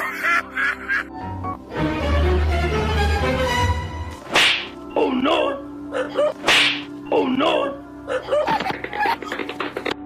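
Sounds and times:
background music: 0.0s - 10.0s
whip-crack whooshes: 4.2s - 4.7s, 6.4s - 6.9s.

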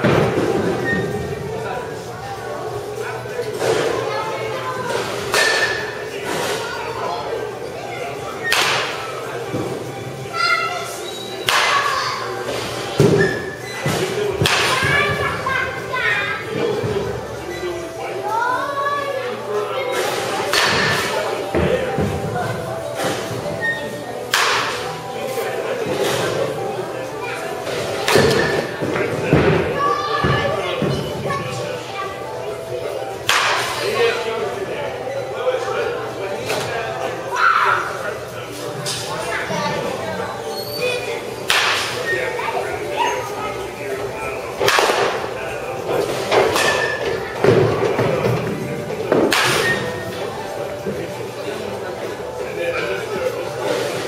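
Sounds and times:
background chatter: 0.0s - 54.0s
bat hitting baseballs: 24.3s - 24.8s, 28.0s - 28.7s, 41.4s - 42.0s, 44.6s - 45.2s, 49.1s - 49.8s.

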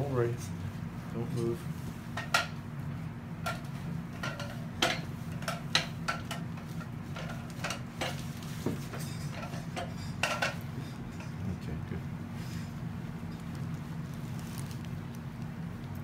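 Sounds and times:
low equipment hum: 0.0s - 16.0s.

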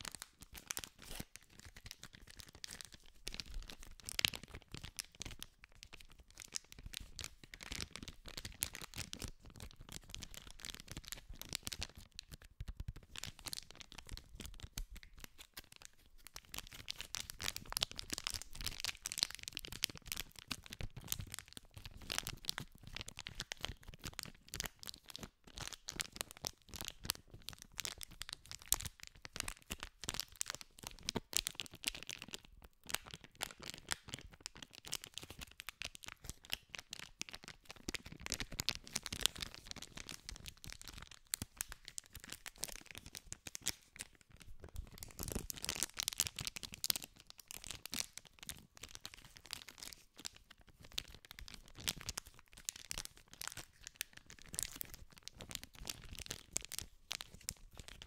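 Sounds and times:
paper wrapper crinkling: 0.0s - 58.0s.

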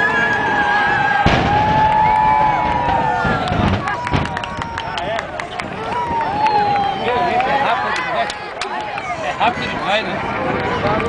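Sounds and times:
rumble of building collapse: 0.6s - 4.8s
deep demolition boom: 1.0s - 4.5s.

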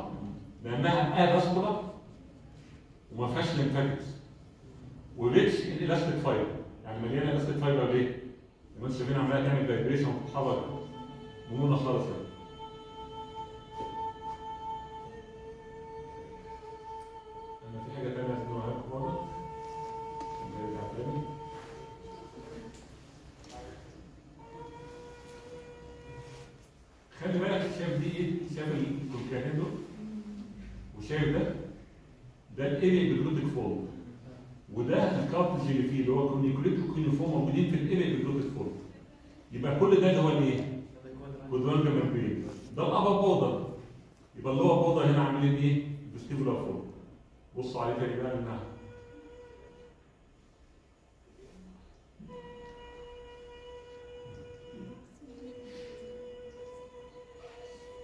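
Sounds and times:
person holding high vowel note: 10.1s - 27.0s, 27.6s - 31.0s, 48.0s - 50.7s, 51.4s - 58.0s.

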